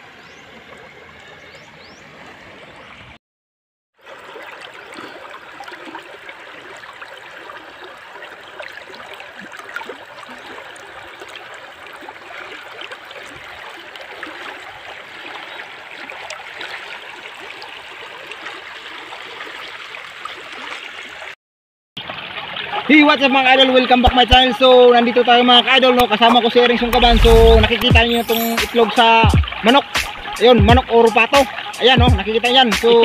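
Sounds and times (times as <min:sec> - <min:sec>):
small water splashes: 0:04.0 - 0:21.4, 0:22.0 - 0:24.4, 0:25.5 - 0:30.5
river rushing and gurgling: 0:26.6 - 0:30.4.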